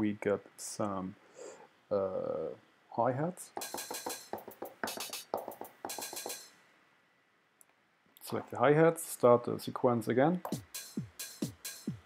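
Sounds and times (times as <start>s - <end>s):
sizzling open hi-hat: 3.4s - 6.6s, 10.4s - 12.0s
drum machine hits: 3.6s - 6.5s, 10.4s - 12.0s.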